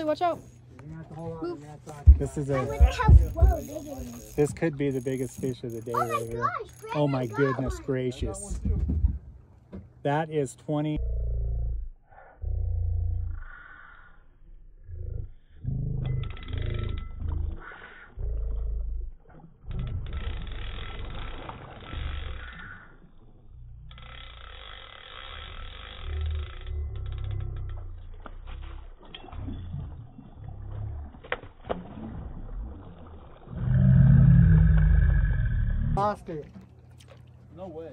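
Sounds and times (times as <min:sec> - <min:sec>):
fish splashing in water: 0:27.9 - 0:35.2.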